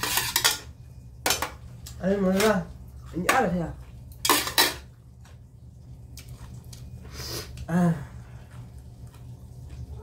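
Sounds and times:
utensils clinking on metal pot: 0:00.0 - 0:01.6, 0:04.2 - 0:04.9.

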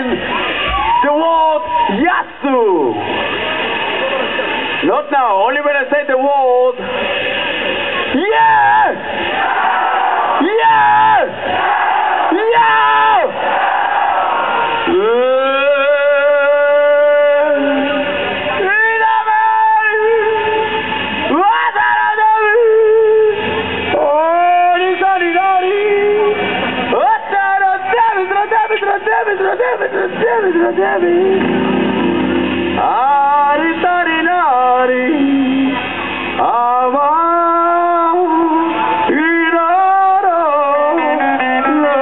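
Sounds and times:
man yelling amplified calls: 0:00.0 - 0:03.1, 0:08.1 - 0:09.3, 0:10.4 - 0:11.4, 0:12.3 - 0:13.4, 0:14.9 - 0:31.1, 0:38.0 - 0:42.0.

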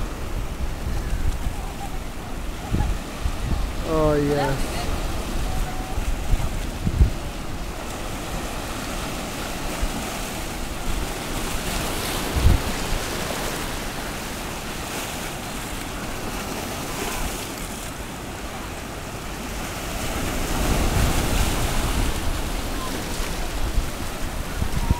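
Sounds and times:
wind noise on microphone: 0:00.0 - 0:14.2, 0:19.8 - 0:24.9
waves washing over rocks: 0:00.0 - 0:24.9.

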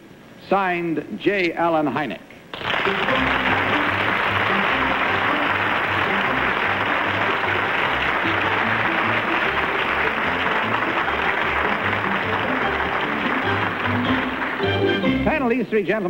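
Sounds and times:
audience applauding: 0:02.5 - 0:15.4.

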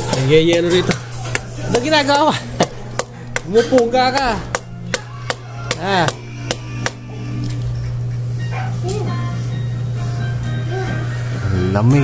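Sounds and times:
child's voice: 0:08.5 - 0:09.5, 0:10.6 - 0:11.1.

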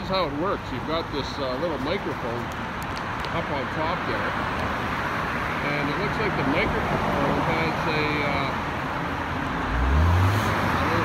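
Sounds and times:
street traffic noise: 0:00.0 - 0:11.0
car engine revving: 0:05.0 - 0:11.0.

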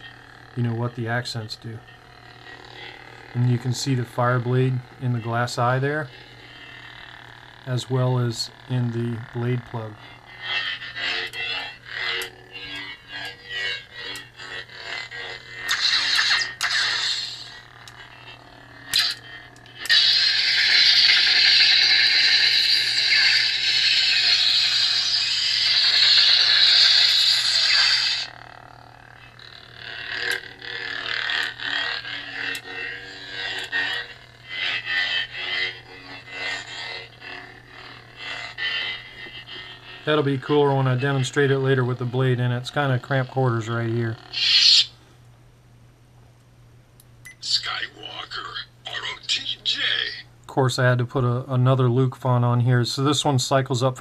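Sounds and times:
lightsaber hum: 0:00.0 - 0:45.2, 0:47.4 - 0:54.0
lightsaber swing sounds: 0:14.8 - 0:17.6.

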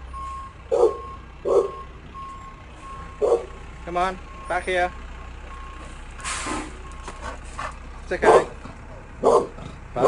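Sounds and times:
truck reversing beeper: 0:00.0 - 0:10.0.

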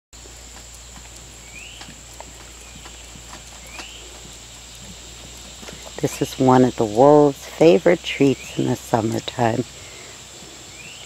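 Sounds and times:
insect buzz: 0:00.2 - 0:11.0
bird chirp: 0:00.4 - 0:07.2, 0:07.9 - 0:11.0.

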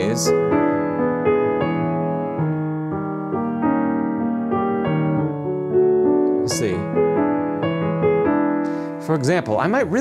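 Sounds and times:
grand piano playing slowly: 0:00.0 - 0:10.0.

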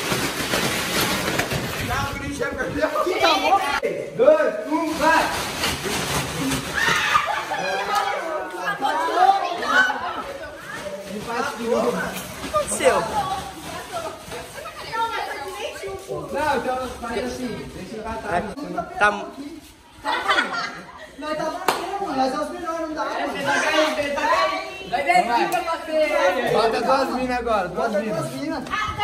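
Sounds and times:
plastic bags crinkling and rustling: 0:00.0 - 0:03.2, 0:04.6 - 0:18.8
young people chattering: 0:01.8 - 0:04.0, 0:06.9 - 0:29.0.

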